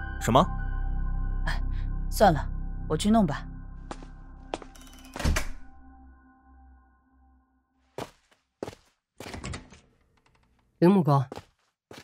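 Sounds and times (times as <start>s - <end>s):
soft background music: 0.0s - 7.6s.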